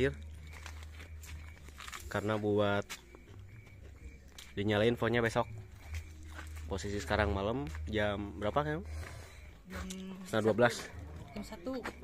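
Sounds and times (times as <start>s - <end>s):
man speaking: 10.2s - 11.4s.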